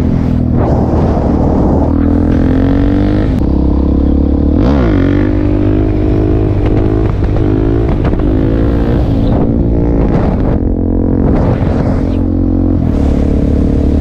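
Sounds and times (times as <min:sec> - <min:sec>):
motorcycle engine revving: 0:00.0 - 0:14.0.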